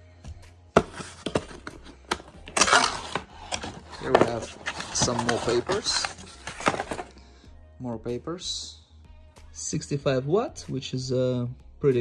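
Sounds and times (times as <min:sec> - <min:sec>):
cardboard scraping rustle: 0:00.8 - 0:07.1.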